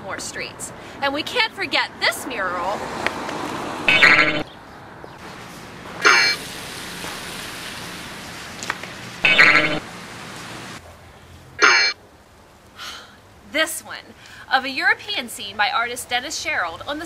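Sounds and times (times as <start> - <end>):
outdoor background noise: 0.0 - 17.0
comedic wobbling blink tone: 3.9 - 4.4, 9.3 - 9.8, 11.6 - 12.0.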